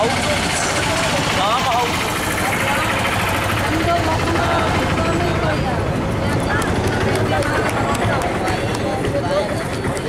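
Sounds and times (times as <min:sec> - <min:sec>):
steady outdoor din: 0:00.0 - 0:10.0
voices talking: 0:00.0 - 0:10.0.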